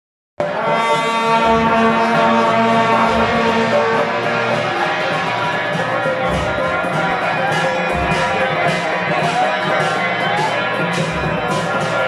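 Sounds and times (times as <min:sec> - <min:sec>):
long brass horns blasting: 0:00.4 - 0:12.0.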